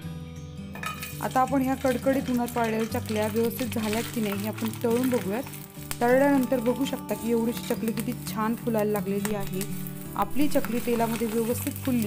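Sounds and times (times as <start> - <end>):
background music: 0.0 - 12.0
metal clinking against pan: 0.8 - 5.4
food sizzling in hot oil: 0.8 - 12.0.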